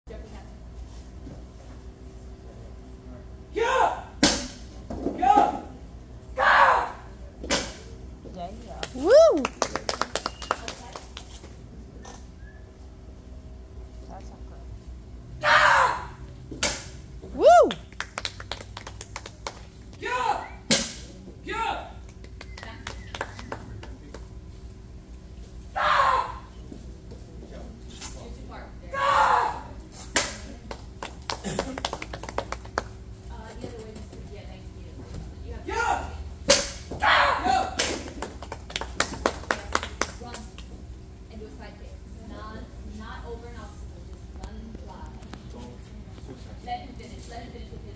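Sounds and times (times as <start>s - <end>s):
person shouting: 3.6s - 4.1s, 6.4s - 7.0s, 9.0s - 9.4s, 15.4s - 16.2s, 17.4s - 17.8s, 20.0s - 20.5s, 25.8s - 26.5s, 29.0s - 29.7s
people clapping: 8.8s - 11.5s, 17.4s - 20.0s, 22.0s - 24.3s, 30.5s - 33.0s, 37.8s - 40.7s.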